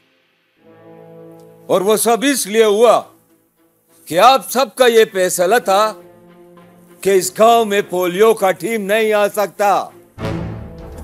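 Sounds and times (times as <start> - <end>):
low sustained chord: 0.0 - 4.0
man speaking: 1.7 - 3.2, 4.0 - 6.0, 6.9 - 10.0.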